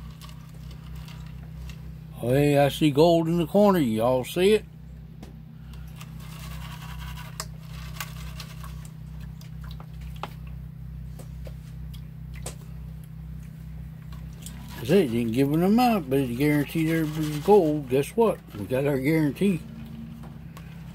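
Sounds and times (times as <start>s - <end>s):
small clicks of grit: 0.0s - 1.8s, 5.7s - 10.6s
steady low hum: 0.0s - 20.9s
water sloshing in a plastic pan: 14.1s - 15.4s.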